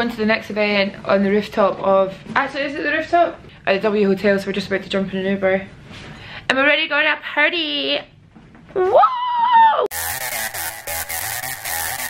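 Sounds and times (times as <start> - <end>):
woman whooping: 8.8 - 9.9
electronic dance music: 9.9 - 12.0.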